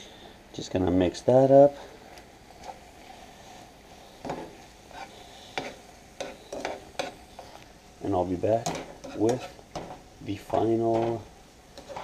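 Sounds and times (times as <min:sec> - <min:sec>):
faint sizzle: 0:00.0 - 0:12.0.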